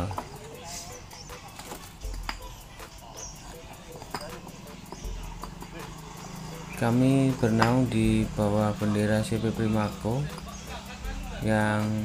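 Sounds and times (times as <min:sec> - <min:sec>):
concrete blocks clacking together: 0:01.5 - 0:02.6, 0:04.0 - 0:05.8.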